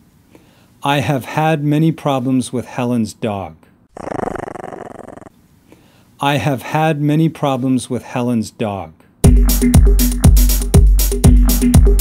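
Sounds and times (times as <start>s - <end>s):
dog growling: 3.9s - 5.3s.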